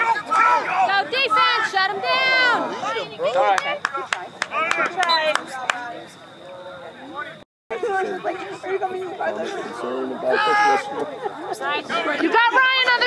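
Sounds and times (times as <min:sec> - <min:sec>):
voices shouting and yelling: 0:00.0 - 0:13.0.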